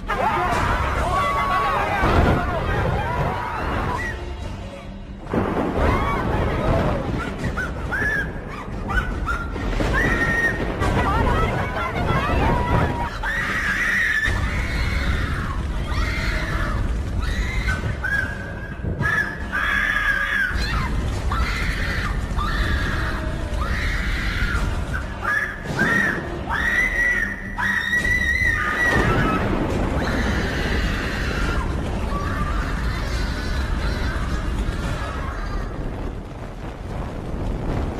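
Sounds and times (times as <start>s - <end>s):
low rumbling film score: 0.0s - 37.9s
high-pitched screams: 12.2s - 35.8s.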